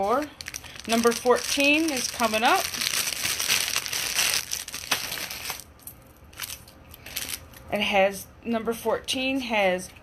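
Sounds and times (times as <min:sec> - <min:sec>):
plastic bag crinkling: 0:00.0 - 0:07.6.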